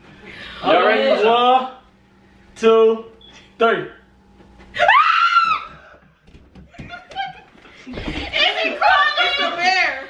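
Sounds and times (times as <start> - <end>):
woman screaming: 4.8 - 6.0.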